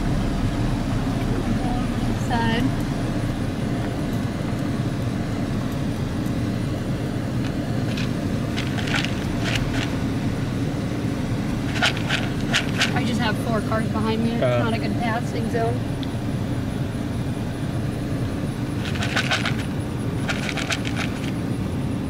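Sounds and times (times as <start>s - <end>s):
car rumble from inside cabin: 0.0s - 22.0s.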